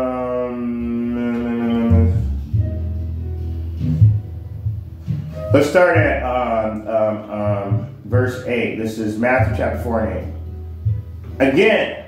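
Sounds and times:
man humming ummm: 0:00.0 - 0:02.7.

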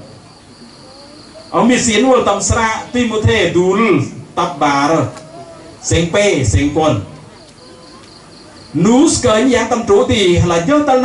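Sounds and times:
crickets chirring: 0:00.0 - 0:04.7, 0:05.8 - 0:11.0
man speaking: 0:01.5 - 0:05.2, 0:05.8 - 0:07.2, 0:08.7 - 0:11.0.

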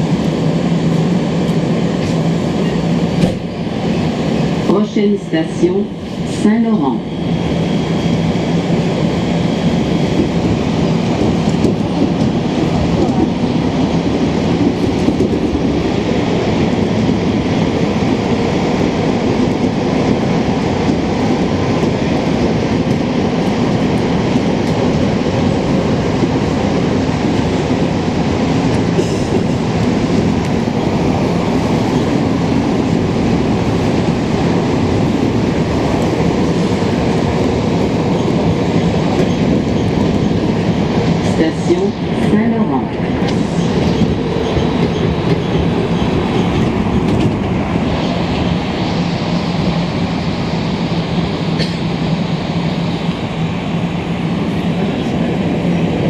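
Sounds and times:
subway car rumble: 0:00.0 - 0:56.0.

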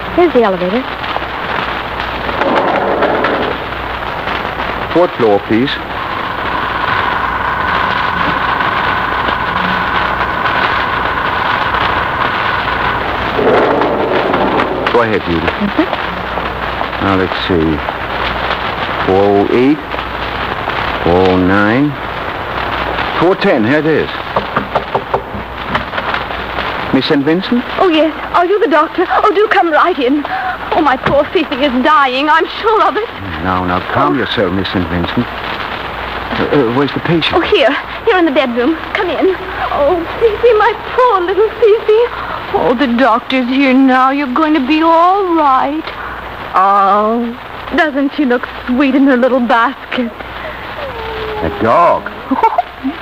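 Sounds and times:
recording hiss and crackle: 0:00.0 - 0:53.0.

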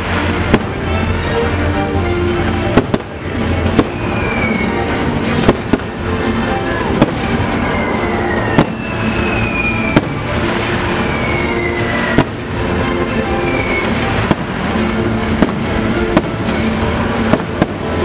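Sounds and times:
fireworks bursting with bangs: 0:00.0 - 0:18.0
orchestral music: 0:00.0 - 0:18.0.

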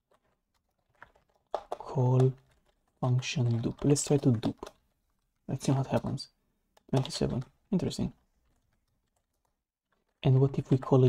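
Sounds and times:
faint keyboard keystrokes: 0:00.1 - 0:06.2, 0:06.8 - 0:11.0.

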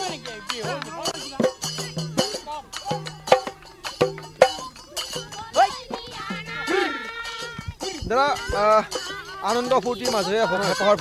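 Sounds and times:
group singing and shouting a chant: 0:00.0 - 0:11.0
sharp claps or drum beats: 0:00.0 - 0:11.0.

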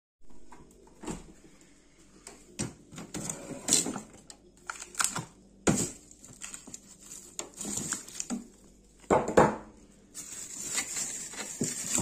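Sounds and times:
plastic packs rustling: 0:02.9 - 0:09.1, 0:10.1 - 0:12.0.

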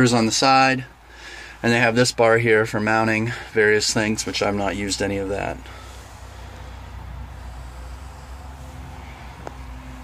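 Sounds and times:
tractor diesel engine idling: 0:00.0 - 0:10.0.

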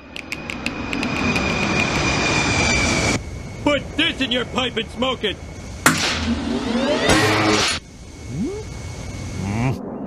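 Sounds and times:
loud hissing rush: 0:01.8 - 0:06.7.

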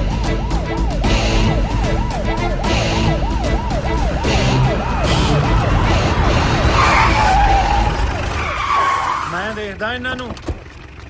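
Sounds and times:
siren wailing: 0:00.0 - 0:09.4
low rumble of traffic: 0:00.6 - 0:11.0.

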